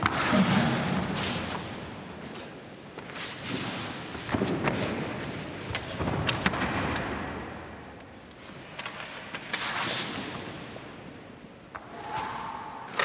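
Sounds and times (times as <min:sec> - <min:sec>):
tape hiss: 0:00.0 - 0:13.0.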